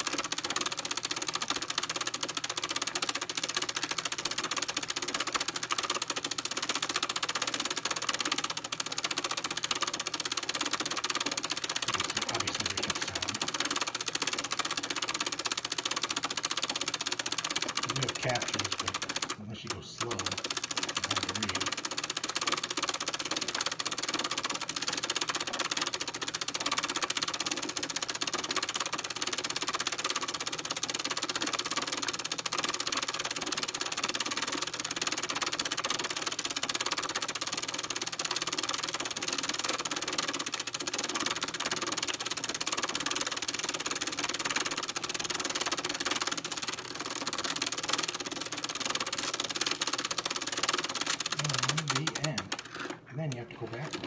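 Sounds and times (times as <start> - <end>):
film projector mechanical chatter: 0.0 - 54.0.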